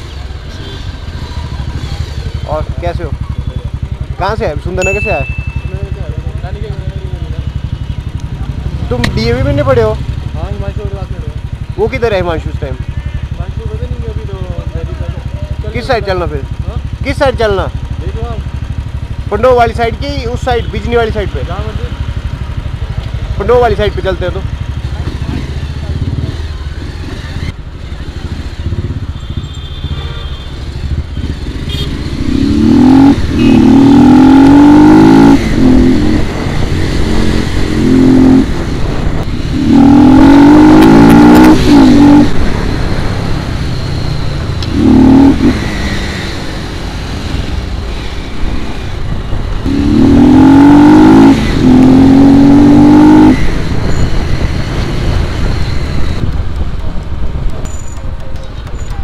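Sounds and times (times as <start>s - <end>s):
motorcycle engine accelerating: 0.6s - 29.8s, 30.5s - 57.6s.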